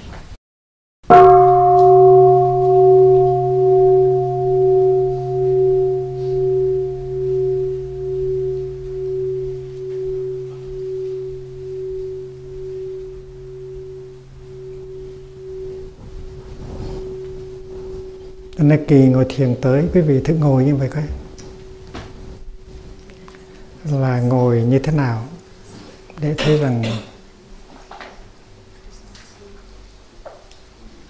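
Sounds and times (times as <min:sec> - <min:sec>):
meditation bell ringing: 0:01.1 - 0:28.9.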